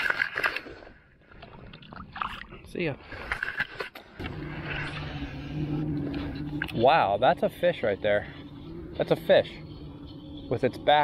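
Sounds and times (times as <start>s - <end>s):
water splashing: 0.0s - 11.0s
electric trolling motor hum: 4.2s - 11.0s.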